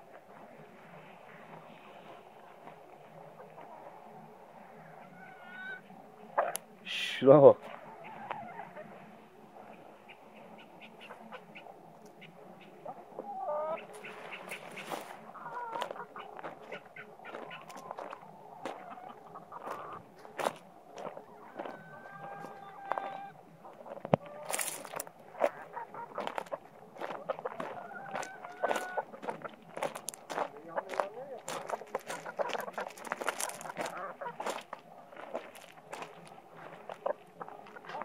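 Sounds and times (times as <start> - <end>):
footsteps on gravel: 13.2 - 38.0.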